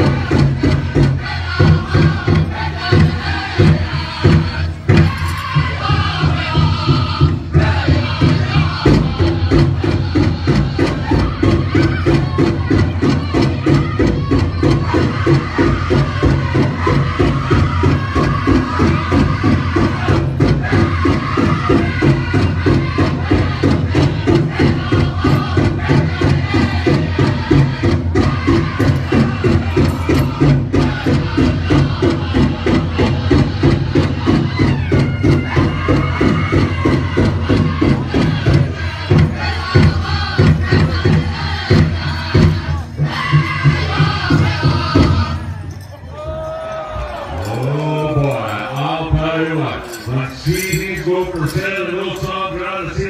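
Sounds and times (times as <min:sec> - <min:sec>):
large drum fast steady beat: 0:00.0 - 0:45.9
singers chanting: 0:00.0 - 0:53.0.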